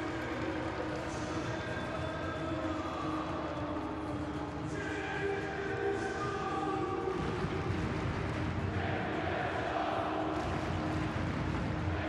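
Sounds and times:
crowd singing and chanting: 3.0s - 12.0s.

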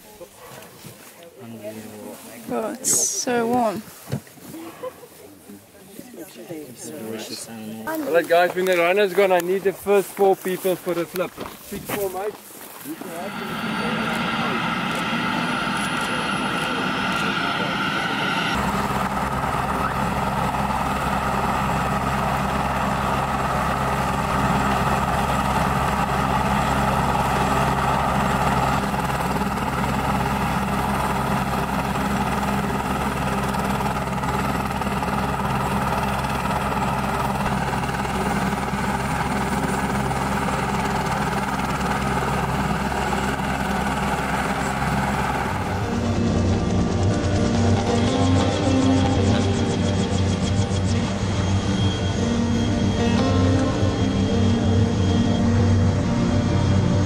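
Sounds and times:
helicopter engine and rotor: 12.9s - 57.0s.

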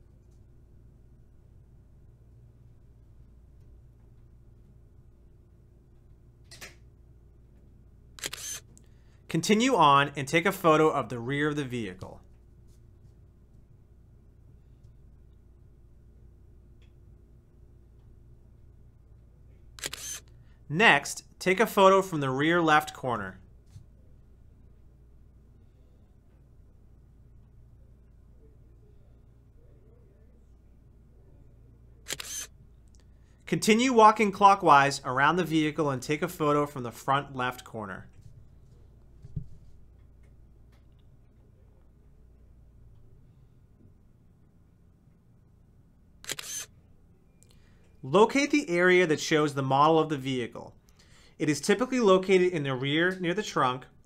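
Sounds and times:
faint low hum: 0.0s - 54.0s
camera shutter click: 8.2s - 8.7s, 19.8s - 20.3s, 32.1s - 32.5s, 46.2s - 46.7s.

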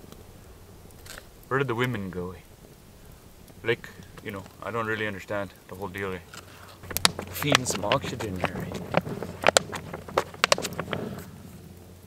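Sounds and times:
fire crackling: 0.0s - 12.0s
cardboard flapping: 6.8s - 11.6s.

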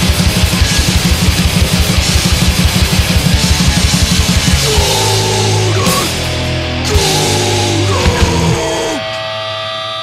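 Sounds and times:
drum hits: 0.0s - 8.8s
guitar feedback tones: 0.0s - 10.0s
punk band final chord: 0.0s - 10.0s.

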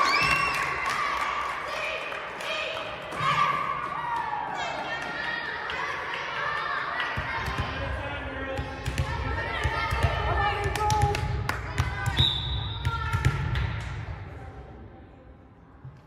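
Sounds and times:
voices echoing in hall: 0.0s - 15.6s.

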